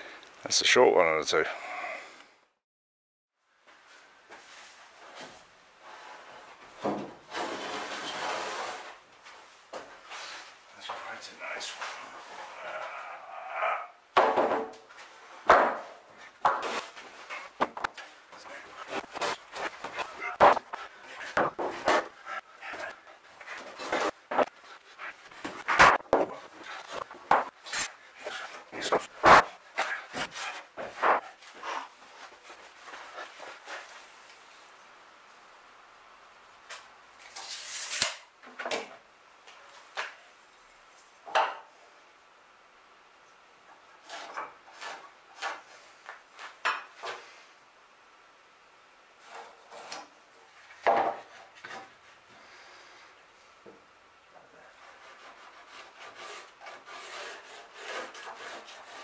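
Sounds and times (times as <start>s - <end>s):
timber scraping: 5.2s - 9.0s, 15.0s - 34.1s, 54.7s - 59.0s
wooden knocks and thuds: 14.2s - 14.8s, 15.4s - 16.7s, 19.8s - 22.1s.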